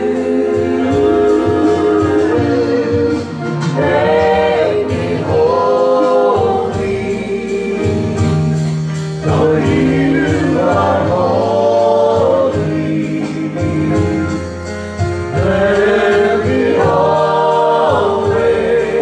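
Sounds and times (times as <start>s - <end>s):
group singing worship song: 0.0s - 19.0s
instrumental accompaniment with bass: 0.0s - 19.0s.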